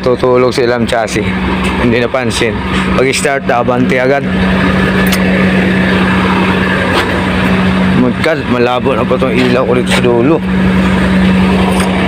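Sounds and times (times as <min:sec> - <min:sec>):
diesel truck engine idling: 0:00.0 - 0:12.0.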